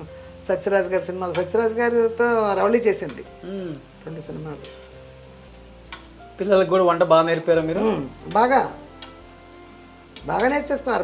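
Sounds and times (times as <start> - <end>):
food sizzling in a pan: 0.0 - 11.0.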